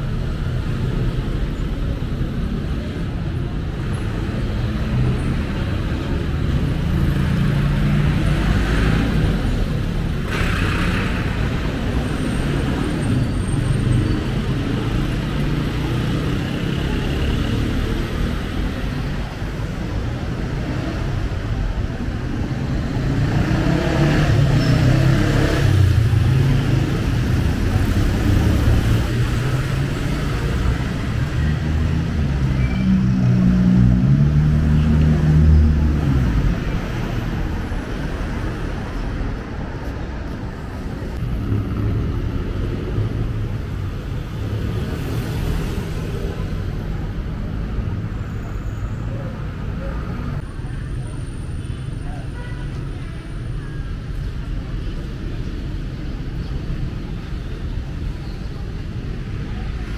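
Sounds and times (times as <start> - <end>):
vehicle engines passing: 0.0 - 59.9.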